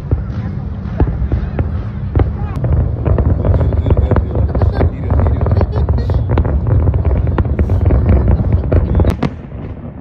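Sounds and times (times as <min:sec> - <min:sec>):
fireworks bangs and crackle: 0:00.0 - 0:10.0
low rumble: 0:00.0 - 0:10.0.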